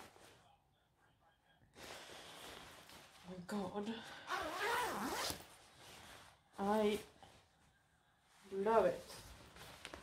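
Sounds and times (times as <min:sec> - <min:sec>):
jacket zipper pulled: 0:04.3 - 0:05.5.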